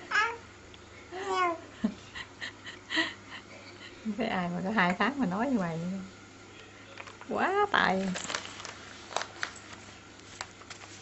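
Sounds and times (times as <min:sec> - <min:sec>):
baby cooing: 0:00.0 - 0:00.4, 0:01.2 - 0:01.6.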